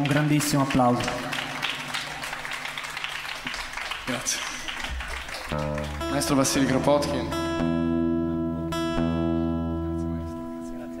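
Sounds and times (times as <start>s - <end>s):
guitar chord ringing: 5.5s - 11.0s.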